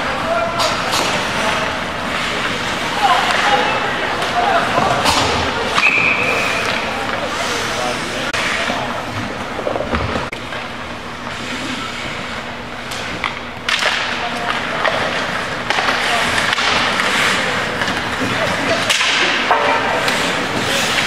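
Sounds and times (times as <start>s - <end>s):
stick hitting puck: 12.9s - 21.0s
skate blades scraping ice: 14.2s - 21.0s.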